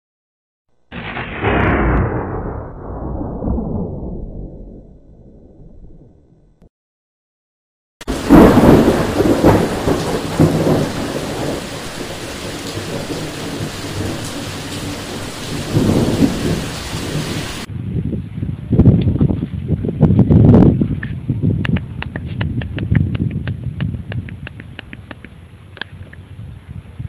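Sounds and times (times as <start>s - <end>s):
thunder crack and rumble: 0.9s - 6.7s, 8.0s - 25.0s
steady rain falling: 8.0s - 17.7s.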